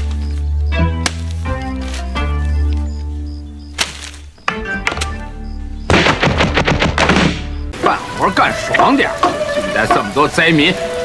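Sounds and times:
film music: 0.0s - 11.0s
thuds and clacks: 5.9s - 7.4s
heavy rain hiss: 7.7s - 11.0s.

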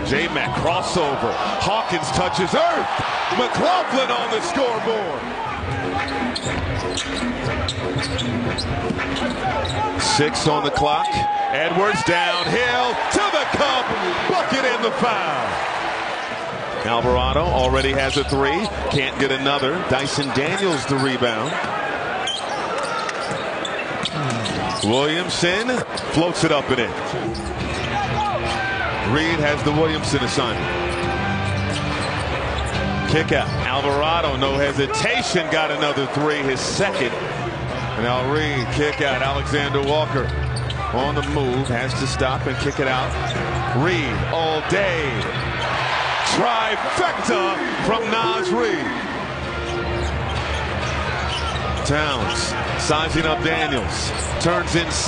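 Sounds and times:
crowd noise: 0.0s - 55.0s.

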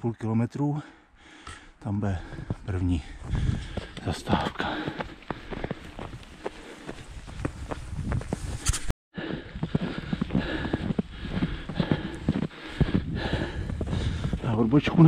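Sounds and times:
running footsteps on snow: 2.2s - 15.0s.

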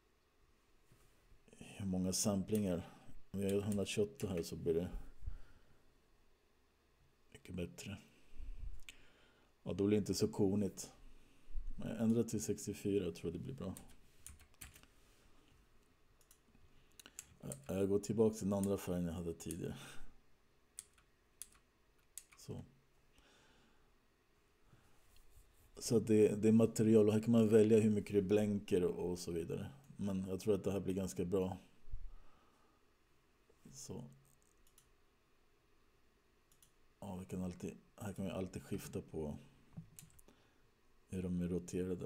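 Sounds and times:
soft computer mouse clicks: 16.2s - 17.8s, 20.8s - 22.4s, 34.2s - 34.9s, 36.5s - 36.8s, 39.8s - 40.2s.

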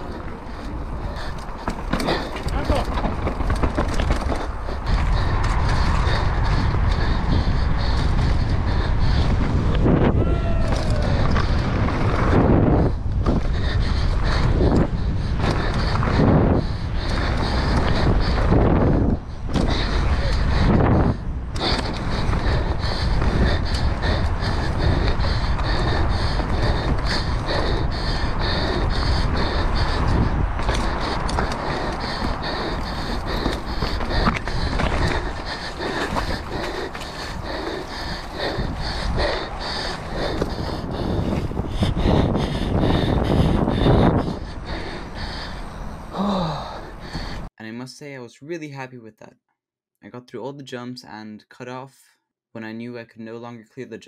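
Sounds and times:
bike chain and frame rattling: 0.0s - 9.7s
wind buffeting microphone: 0.0s - 47.5s.

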